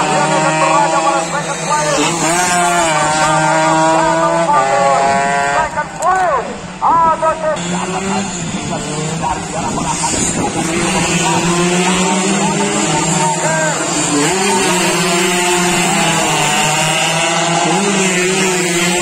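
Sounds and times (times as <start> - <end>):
motorcycle engine at high revs: 0.0 - 5.8, 7.6 - 19.0.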